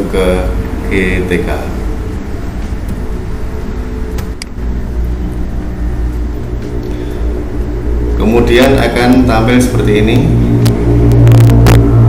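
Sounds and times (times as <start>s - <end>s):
low engine rumble: 0.0s - 12.0s.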